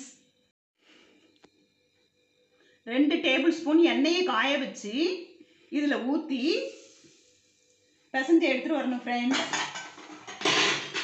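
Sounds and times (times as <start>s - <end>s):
steel bowl clinking and scraping: 9.3s - 11.0s.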